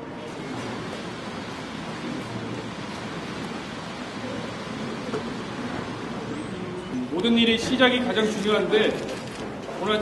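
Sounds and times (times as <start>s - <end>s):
crowded indoor lobby noise: 0.0s - 10.0s.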